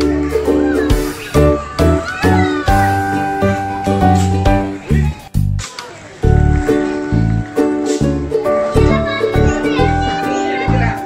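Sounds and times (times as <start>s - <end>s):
music with bouncy beat: 0.0s - 5.6s.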